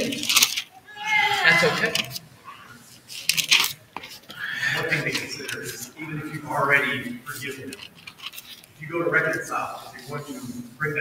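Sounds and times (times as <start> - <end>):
paper rustling: 0.0 - 0.7, 1.6 - 2.2, 2.8 - 6.4, 7.3 - 8.8.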